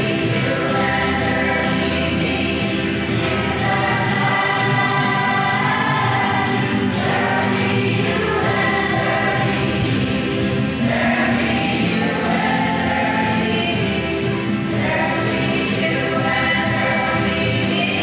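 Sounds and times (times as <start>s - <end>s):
group singing gospel in chorus: 0.0s - 18.0s
ukuleles strumming: 0.0s - 18.0s.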